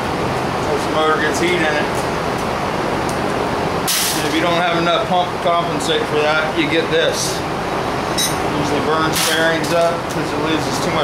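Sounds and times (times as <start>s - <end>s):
short sharp hiss: 3.9s - 4.2s.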